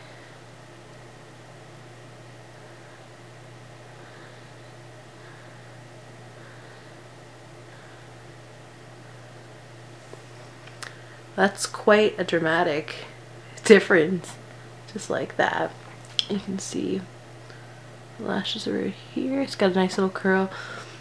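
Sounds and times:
room tone hum and hiss: 0.0 - 21.0.

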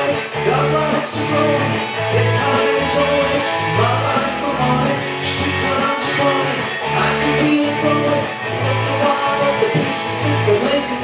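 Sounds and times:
bass line: 0.0 - 11.0
electric guitar: 0.0 - 11.0.

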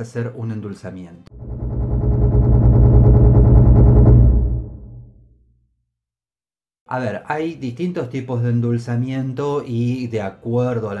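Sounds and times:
deep synthesized drone with flutter: 1.3 - 5.2.

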